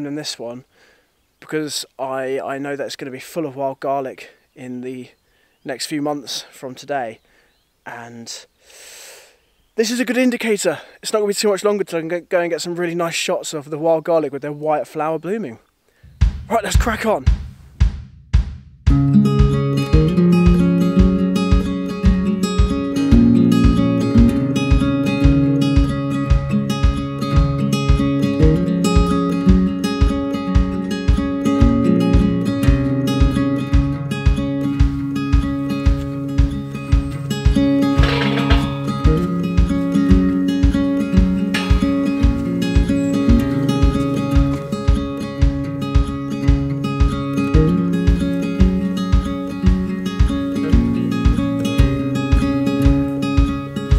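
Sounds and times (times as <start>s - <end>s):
acoustic folk instrumental music: 18.9s - 53.9s.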